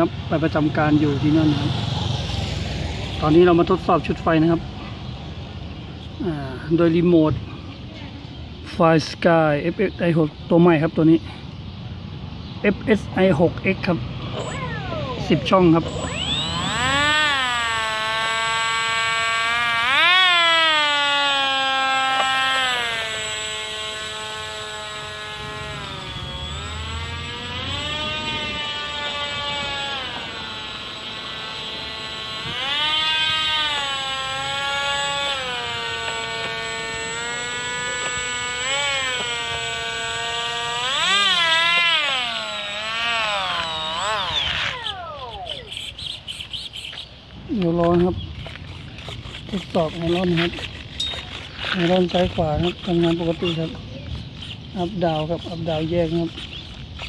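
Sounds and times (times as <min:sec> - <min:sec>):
electric ducted-fan motor whining: 0:14.3 - 0:47.0.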